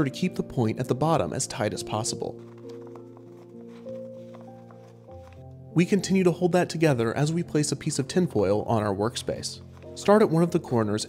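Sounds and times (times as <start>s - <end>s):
quiet background music held notes: 0.0s - 11.0s.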